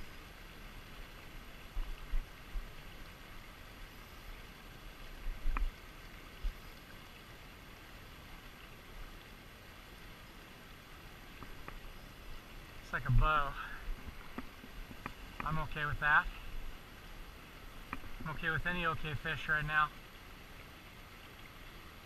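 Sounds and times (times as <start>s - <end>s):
river water flowing: 0.0s - 22.0s.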